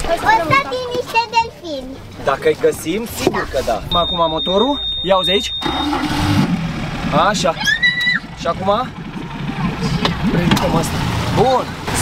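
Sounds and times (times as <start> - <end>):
voices: 0.0 - 6.2
outboard motor idling: 3.9 - 12.0.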